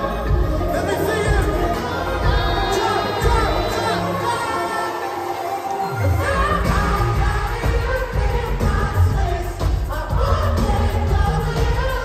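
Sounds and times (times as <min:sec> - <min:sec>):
person singing: 0:00.0 - 0:08.4
heavy bass beat: 0:00.3 - 0:04.2.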